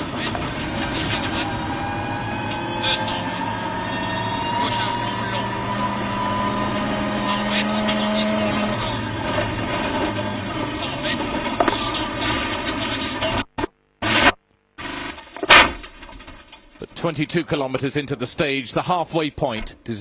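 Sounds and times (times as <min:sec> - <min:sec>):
rally car engine pulling hard: 0:00.0 - 0:13.3.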